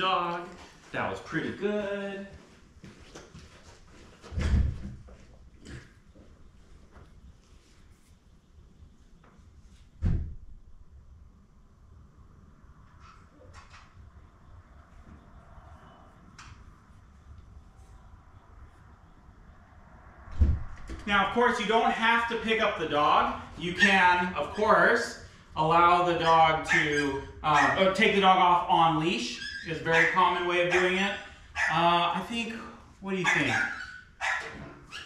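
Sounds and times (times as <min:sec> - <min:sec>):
door banging shut: 0:04.3 - 0:05.0, 0:10.0 - 0:10.5.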